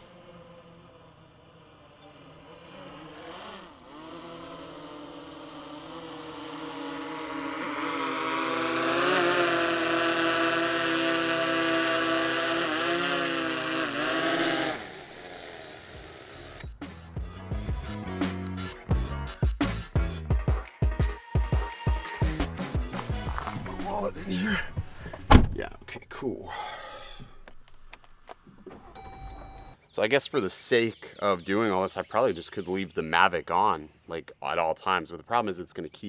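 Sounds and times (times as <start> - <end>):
drone propellers buzzing: 0.0 - 16.8
background music: 16.6 - 25.2.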